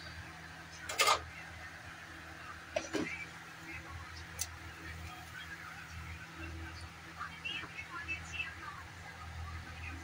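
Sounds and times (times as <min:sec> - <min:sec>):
gas burner hum: 0:00.0 - 0:10.0.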